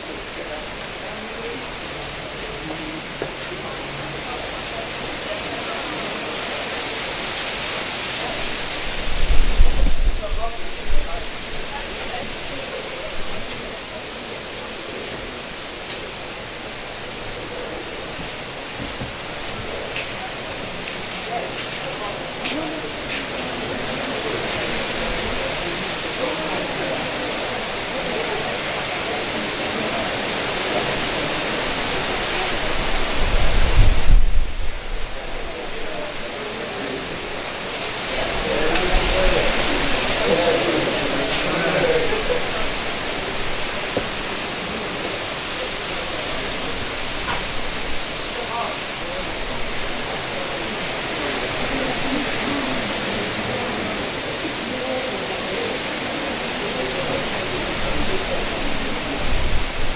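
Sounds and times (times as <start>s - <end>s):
murmur of voices: 0.0s - 59.9s
steady rushing noise: 0.0s - 59.9s
wind buffeting microphone: 8.8s - 11.7s, 32.8s - 35.2s.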